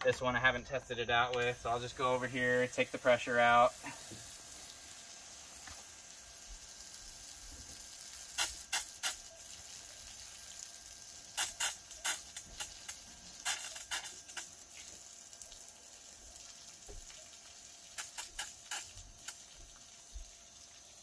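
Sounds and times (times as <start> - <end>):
garden hose spraying hiss: 0.0 - 21.0
short sharp water spurts: 1.4 - 21.0.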